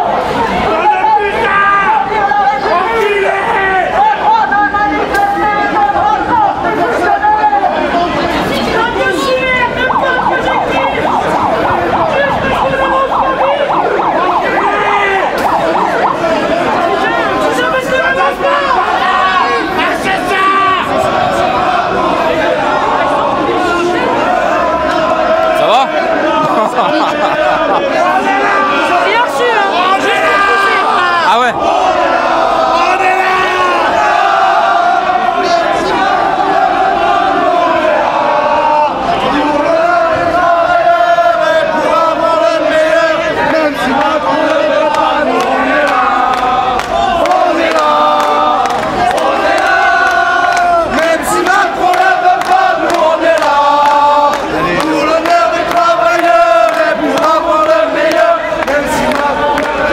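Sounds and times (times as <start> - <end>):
street crowd chatter: 0.0 - 59.9
siren warbling: 9.6 - 18.8.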